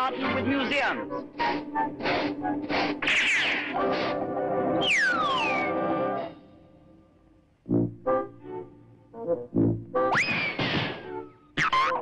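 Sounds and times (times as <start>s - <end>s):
cartoon background music: 0.0s - 7.0s, 7.6s - 12.0s
falling whistle glide: 4.8s - 5.9s.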